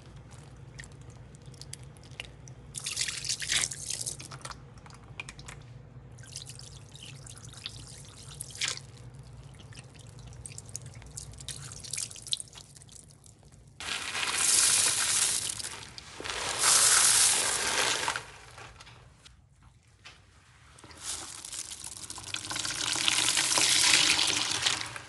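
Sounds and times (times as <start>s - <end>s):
suds crackling and dripping: 0.0s - 25.0s
soap flakes pouring: 13.5s - 19.0s, 20.8s - 25.0s.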